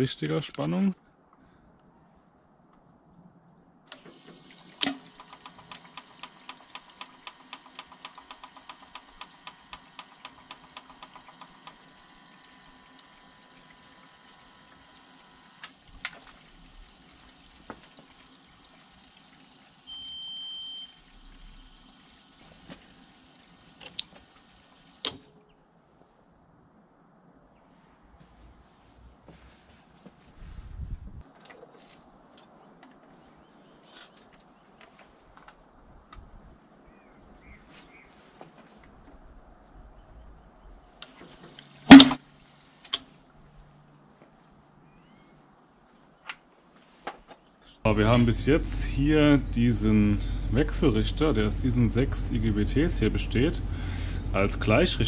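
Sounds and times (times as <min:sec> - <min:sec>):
relay clicking: 0:03.9 - 0:16.5.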